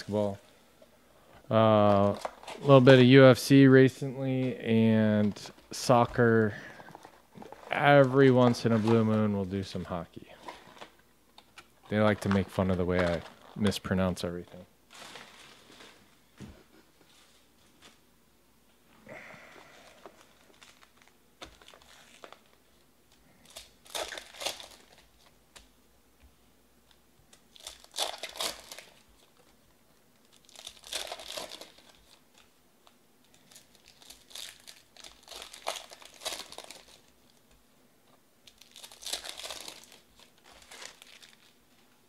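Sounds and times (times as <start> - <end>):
foil wrappers tearing and crinkling: 1.8 - 3.7, 11.9 - 13.9, 14.9 - 16.0, 19.6 - 25.7, 27.3 - 29.6, 30.2 - 37.5, 38.4 - 41.8.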